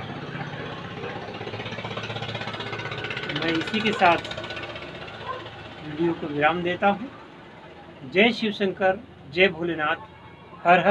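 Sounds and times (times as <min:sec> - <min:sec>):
engine running with fast pulse: 0:00.0 - 0:10.9.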